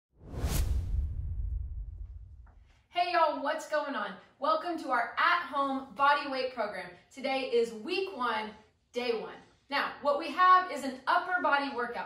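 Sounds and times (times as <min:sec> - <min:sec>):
deep low rumble: 0:00.2 - 0:02.6
whoosh swoosh: 0:00.2 - 0:02.7.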